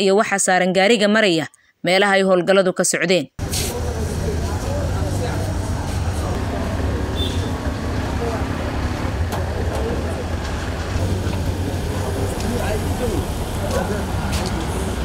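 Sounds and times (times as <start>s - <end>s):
vehicle engines rumbling in traffic: 3.4s - 15.0s.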